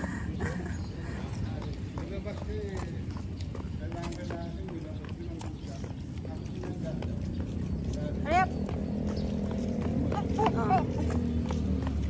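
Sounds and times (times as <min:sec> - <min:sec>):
footsteps on concrete: 0:00.0 - 0:12.0.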